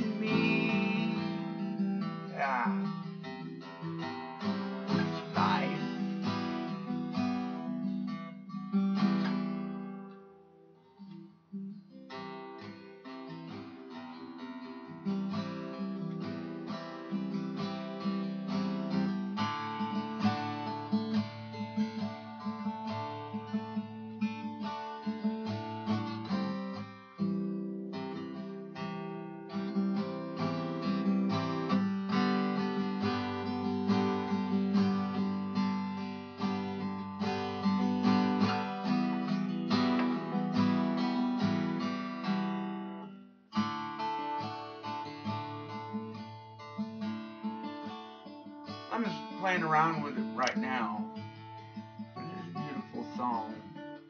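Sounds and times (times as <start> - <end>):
acoustic guitar strummed and picked: 0.0 - 54.0.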